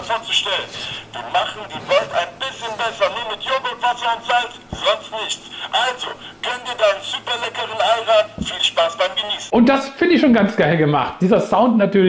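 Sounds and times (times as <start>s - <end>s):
man's voice through small speaker: 0.0s - 12.0s.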